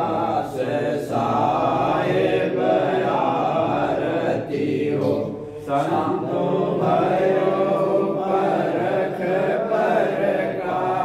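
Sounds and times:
devotional chanting: 0.0 - 11.0.

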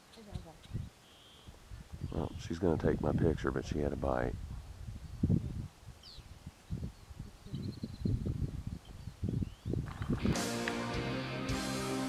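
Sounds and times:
rumbles and bumps on microphone: 9.7 - 10.4
background music: 10.2 - 12.0.

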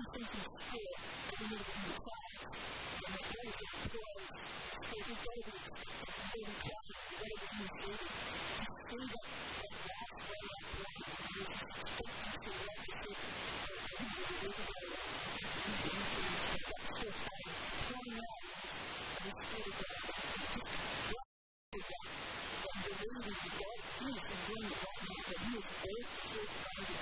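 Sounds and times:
woman talking through microphone: 0.0 - 18.6, 19.2 - 21.2, 21.8 - 27.0
steady hiss: 0.0 - 21.2, 21.8 - 27.0.

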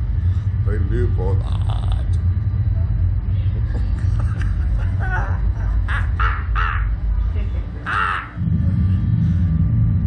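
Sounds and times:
steady low rumble: 0.0 - 10.0
man laughing harshly: 3.7 - 8.4.

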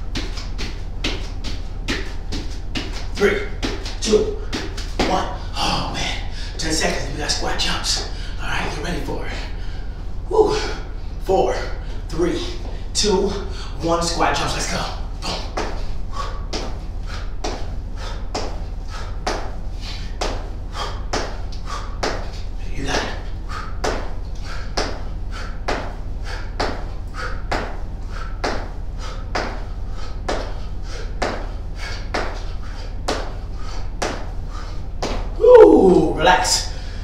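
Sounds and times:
low steady hum: 0.0 - 37.0
hard exhaled breaths: 12.7 - 13.8, 15.2 - 22.5, 23.2 - 34.9.

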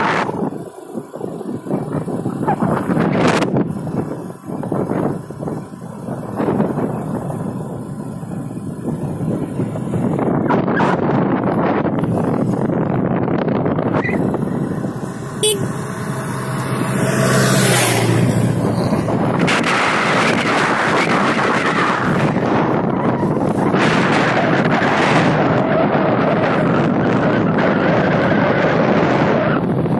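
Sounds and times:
motorcycle engine: 0.0 - 29.9
road noise: 0.0 - 29.9
wind buffeting microphone: 0.0 - 29.9.

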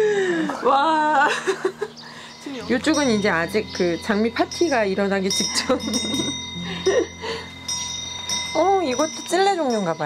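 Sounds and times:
soft chime-like tones: 2.1 - 10.0.

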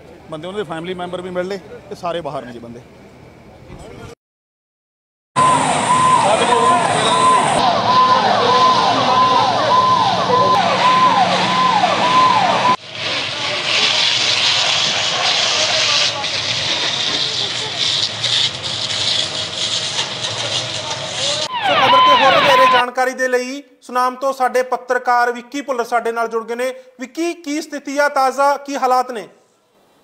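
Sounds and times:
fire engine siren: 5.4 - 22.8
voices: 6.0 - 12.4, 15.4 - 18.1, 20.0 - 22.9.

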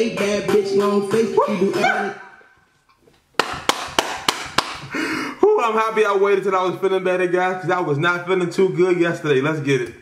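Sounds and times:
rap music: 0.0 - 2.4
man laughing breathily: 4.8 - 5.4.

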